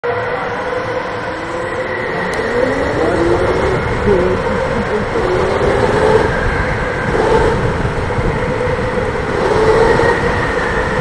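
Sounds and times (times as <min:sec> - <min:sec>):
tyres and drivetrain rumble: 0:00.1 - 0:11.0
electric motor whining: 0:01.2 - 0:11.0.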